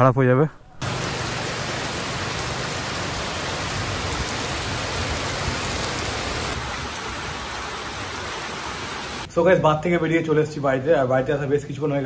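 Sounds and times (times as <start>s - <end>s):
heavy rain on wet road: 0.8s - 9.3s.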